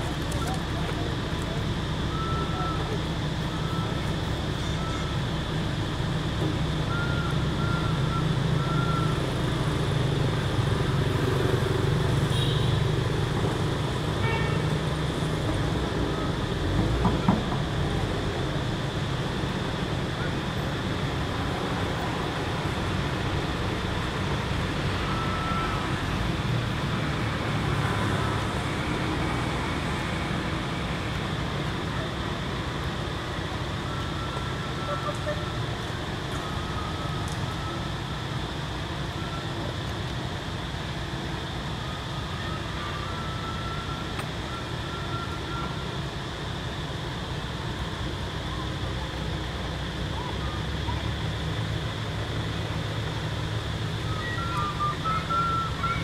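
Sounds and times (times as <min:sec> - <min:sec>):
low outdoor background noise: 0:00.0 - 0:56.0.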